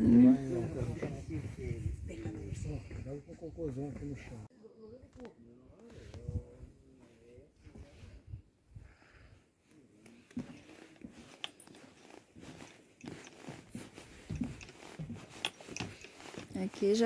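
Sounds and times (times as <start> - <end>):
footsteps on wooden boardwalk: 10.2 - 17.0.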